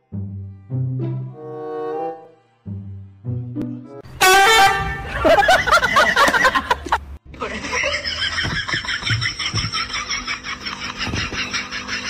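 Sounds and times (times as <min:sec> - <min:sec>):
loud horn honk: 0:04.0 - 0:05.3
laughing voice: 0:05.0 - 0:12.0.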